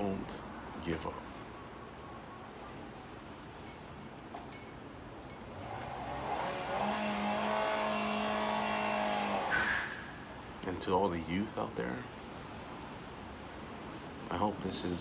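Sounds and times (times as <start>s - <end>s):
vehicle engine passing by: 5.5s - 10.2s.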